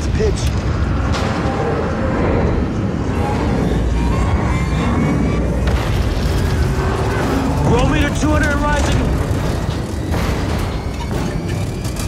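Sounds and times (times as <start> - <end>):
deep spacecraft rumble: 0.0 - 12.0
film score music: 0.0 - 12.0.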